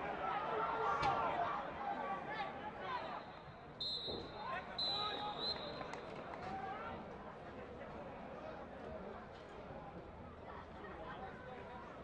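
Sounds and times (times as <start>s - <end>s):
referee's pea whistle blasts: 3.8s - 5.8s.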